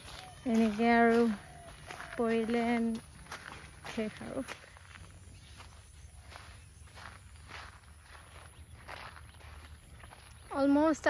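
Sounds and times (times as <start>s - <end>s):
footsteps on muddy dirt: 0.0s - 11.0s.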